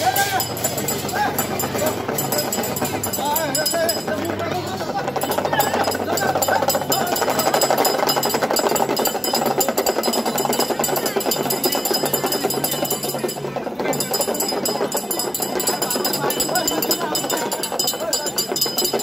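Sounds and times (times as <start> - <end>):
fast clatter: 0.0 - 19.0.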